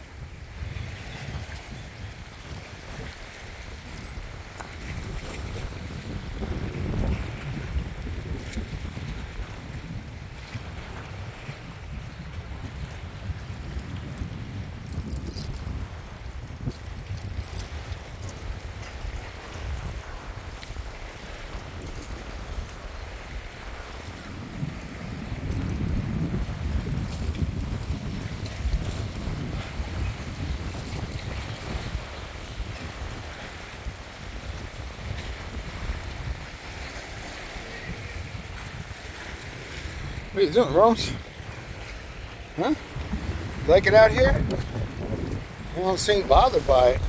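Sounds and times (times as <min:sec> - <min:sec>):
wind buffeting microphone: 0:00.0 - 0:47.0
water lapping: 0:00.1 - 0:47.0.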